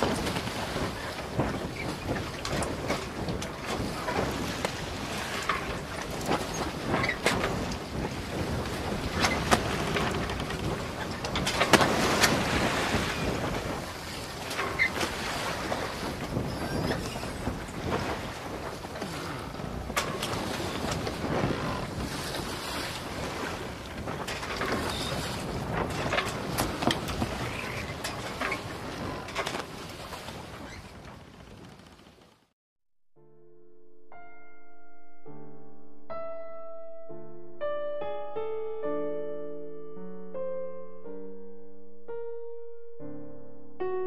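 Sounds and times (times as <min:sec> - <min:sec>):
creaks and knocks: 0:00.0 - 0:12.5, 0:14.4 - 0:22.5, 0:23.8 - 0:32.4
sea waves washing: 0:00.0 - 0:30.7
water noise: 0:00.0 - 0:31.7
wind: 0:00.0 - 0:32.5.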